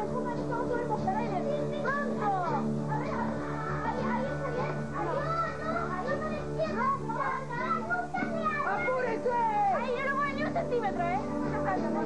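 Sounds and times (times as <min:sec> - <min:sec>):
background music: 0:00.0 - 0:12.0
children calling and talking: 0:00.0 - 0:12.0.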